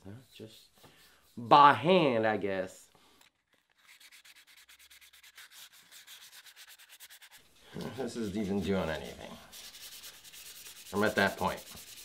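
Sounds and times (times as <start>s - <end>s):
hand sanding rasping strokes: 0.0s - 1.5s, 3.7s - 12.0s.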